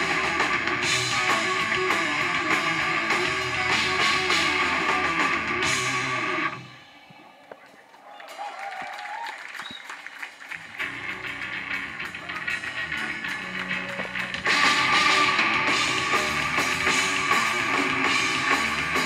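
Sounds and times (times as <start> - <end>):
live metal band: 0.0 - 7.5, 10.7 - 19.0.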